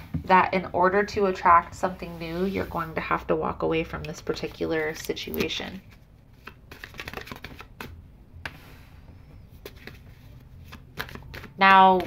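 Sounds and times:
cards sliding: 0:04.9 - 0:08.9, 0:09.6 - 0:11.6
cards tapping on tabletop: 0:11.0 - 0:12.0.

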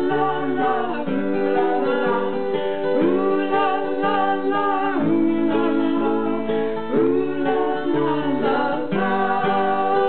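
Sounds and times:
person singing: 0:00.0 - 0:10.0
strummed accompaniment: 0:00.0 - 0:10.0
voices holding wordless notes: 0:00.0 - 0:10.0.

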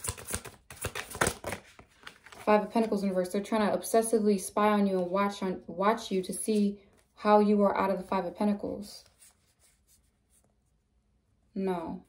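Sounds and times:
cards clicking and rubbing: 0:00.0 - 0:02.4.

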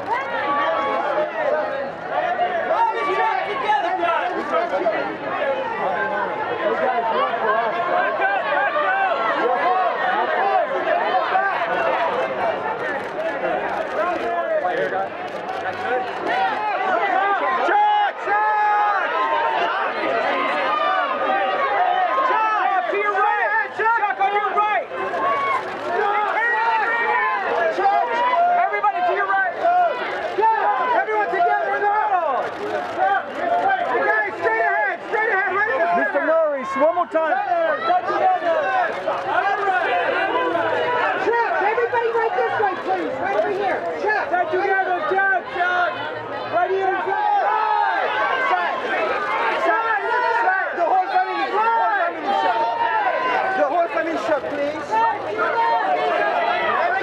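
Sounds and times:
crowd calling out and talking: 0:00.0 - 0:57.0.

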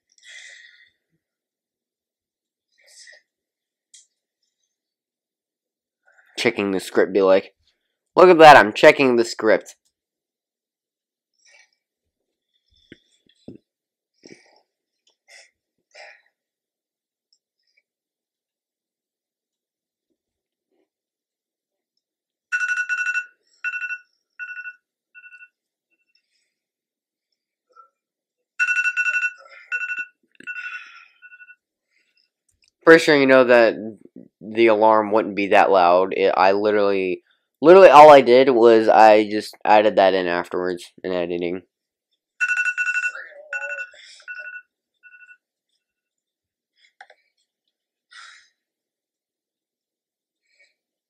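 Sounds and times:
electronic alarm trilled beeps: 0:22.5 - 0:25.6, 0:28.6 - 0:31.6, 0:42.4 - 0:45.4.

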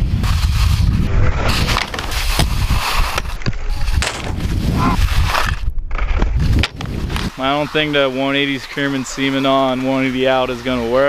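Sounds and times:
wind on microphone: 0:00.0 - 0:07.9
skis sliding over snow: 0:00.2 - 0:05.6
skis scraping and knocking on box: 0:01.5 - 0:07.4.

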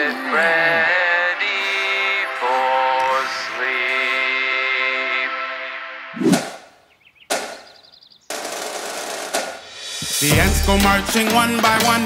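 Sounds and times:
marching song: 0:00.0 - 0:06.1
rapid drum roll: 0:08.3 - 0:10.9.

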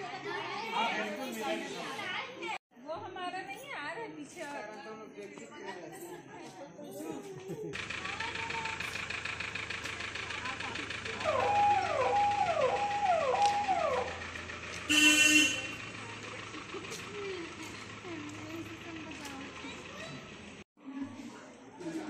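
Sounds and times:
car engine hum: 0:07.8 - 0:20.6
car horn toot: 0:11.2 - 0:15.9.

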